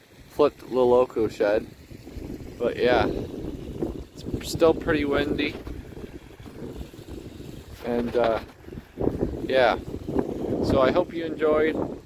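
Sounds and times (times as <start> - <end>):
wind buffeting microphone: 0.9 - 12.0.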